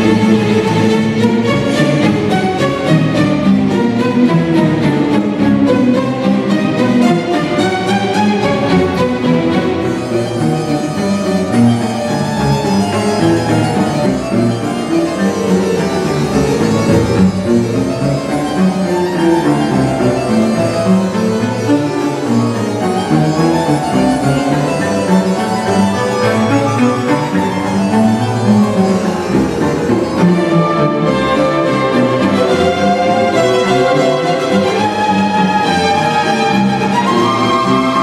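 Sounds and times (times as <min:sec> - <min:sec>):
string orchestra playing: 0:00.0 - 0:38.0.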